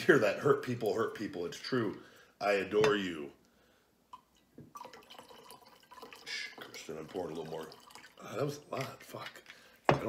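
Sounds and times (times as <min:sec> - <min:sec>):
whiskey pouring into a glass: 0:04.1 - 0:10.0.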